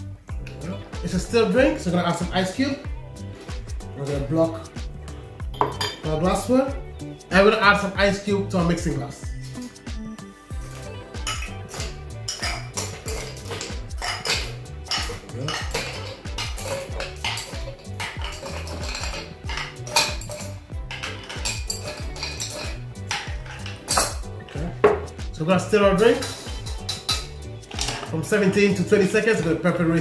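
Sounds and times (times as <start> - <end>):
ice cubes clinking into glass: 11.3 - 24.2.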